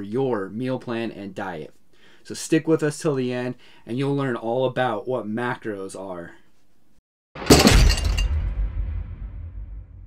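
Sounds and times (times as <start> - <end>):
loud crash hit: 7.4 - 10.0
low rumble: 7.9 - 10.0.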